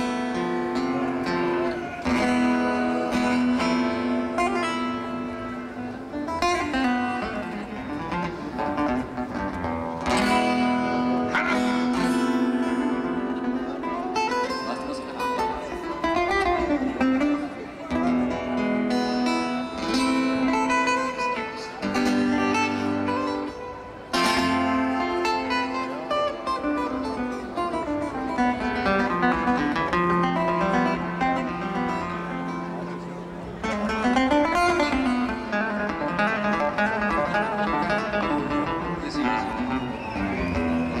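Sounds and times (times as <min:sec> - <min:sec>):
acoustic guitars playing: 0:00.0 - 0:41.0.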